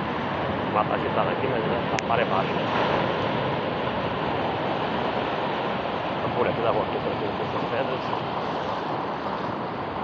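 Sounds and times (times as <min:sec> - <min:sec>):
ocean surf breaking over rocks: 0:00.0 - 0:10.0.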